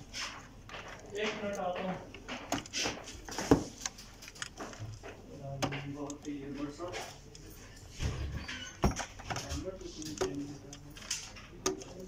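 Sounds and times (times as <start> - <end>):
plastic clicks and knocks: 8.8 - 12.0.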